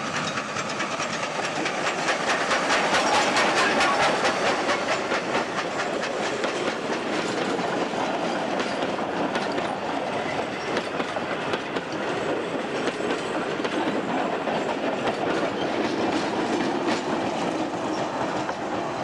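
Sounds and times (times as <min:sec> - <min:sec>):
train carriages rolling past: 0:00.0 - 0:19.0
wheels clicking over rail joints: 0:00.0 - 0:19.0.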